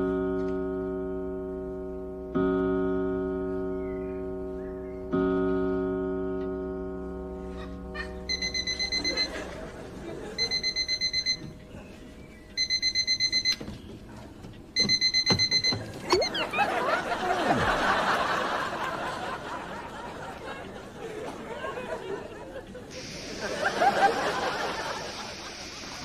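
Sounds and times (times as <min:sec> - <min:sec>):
audience laughter: 0:07.5 - 0:10.9, 0:16.2 - 0:26.0
alarm clock beeping: 0:08.0 - 0:11.7, 0:12.5 - 0:13.9, 0:14.8 - 0:16.8.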